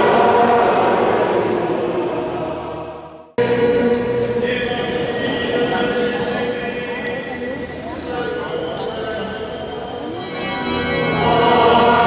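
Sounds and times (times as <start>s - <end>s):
choir and congregation singing: 0.0s - 7.4s, 10.8s - 12.0s.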